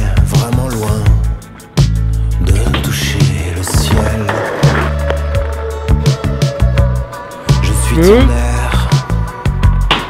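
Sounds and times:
music with steady bass: 0.0s - 10.0s
skateboard wheels rolling: 2.5s - 7.2s.

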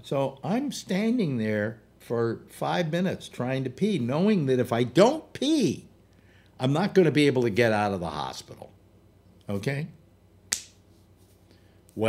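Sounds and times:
sharp click: 10.5s - 10.8s.

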